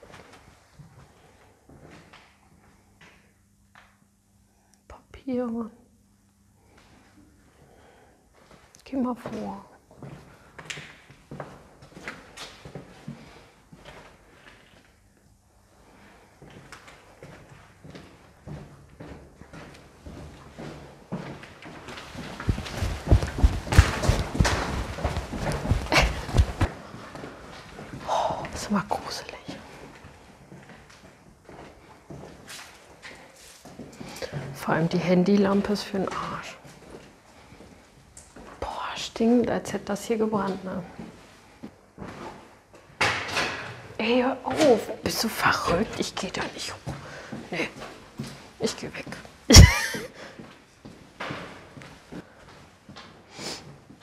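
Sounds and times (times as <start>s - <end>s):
footsteps scuffing on gritty floor: 17.2s - 26.7s
heavy thuds: 22.4s - 26.7s.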